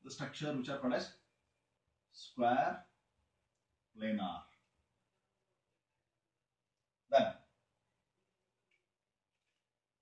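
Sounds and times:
man speaking: 0:00.0 - 0:01.2, 0:02.1 - 0:02.9, 0:03.9 - 0:04.6, 0:07.1 - 0:07.5.

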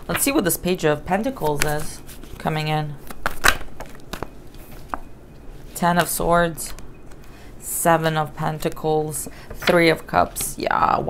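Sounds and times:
cards snapping and flicking: 0:03.1 - 0:04.3.

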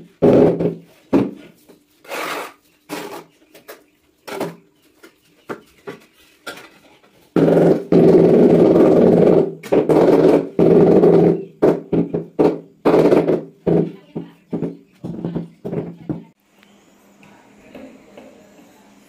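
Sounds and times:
tile rubbing in mortar: 0:02.0 - 0:03.3.

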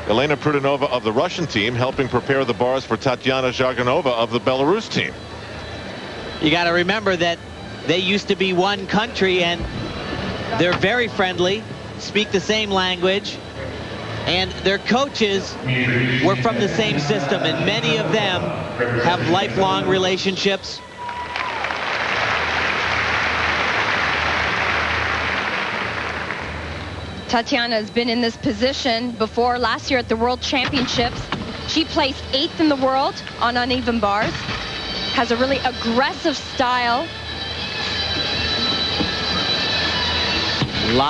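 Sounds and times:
arena crowd hubbub: 0:00.0 - 0:41.0
crowd applauding: 0:21.0 - 0:27.0.

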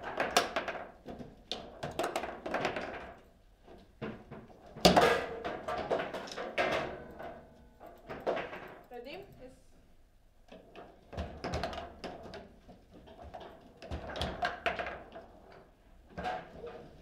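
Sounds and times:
foosball knocks and clacks: 0:00.0 - 0:08.9, 0:10.5 - 0:17.0
foosball rods rattling: 0:00.0 - 0:09.0, 0:10.6 - 0:17.0.

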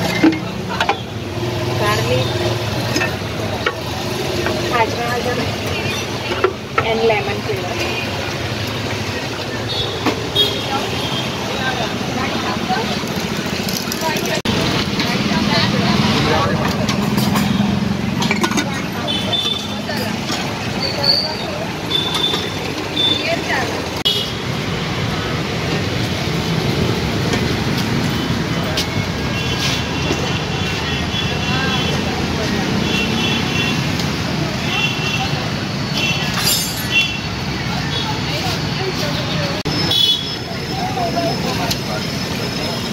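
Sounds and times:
people talking: 0:00.0 - 0:24.1, 0:28.2 - 0:42.9
traffic passing: 0:00.0 - 0:42.9.

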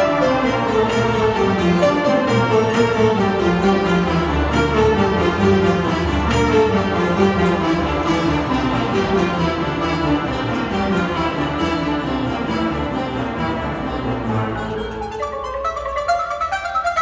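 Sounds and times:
orchestra accompaniment: 0:00.0 - 0:17.0.

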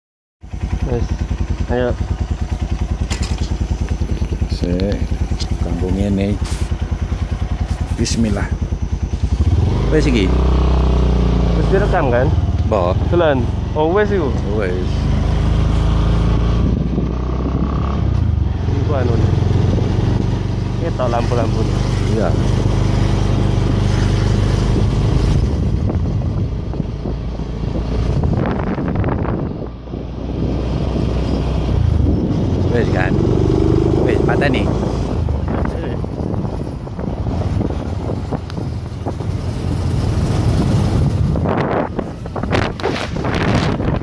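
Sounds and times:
motorcycle engine running: 0:00.4 - 0:44.0.

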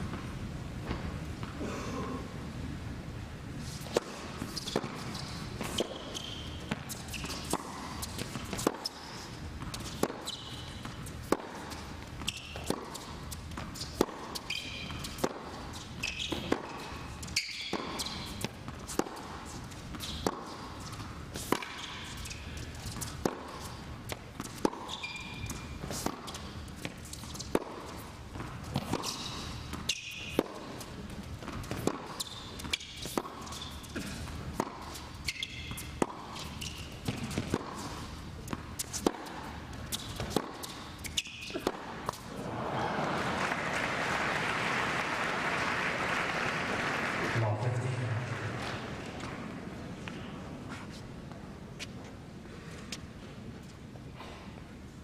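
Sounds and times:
shoes squeaking on court: 0:03.6 - 0:42.5, 0:48.6 - 0:54.6
tennis racket hitting ball: 0:03.8 - 0:42.4
tennis ball bouncing: 0:03.8 - 0:42.5
crowd applauding: 0:42.4 - 0:48.7.

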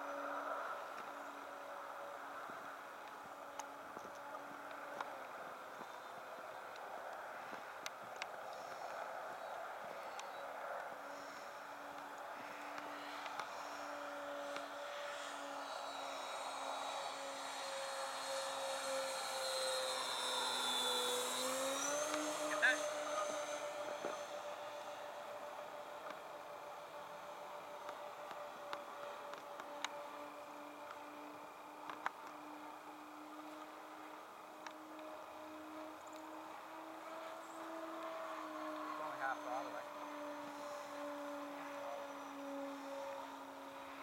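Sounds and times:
model airplane motors humming: 0:00.0 - 0:44.0.

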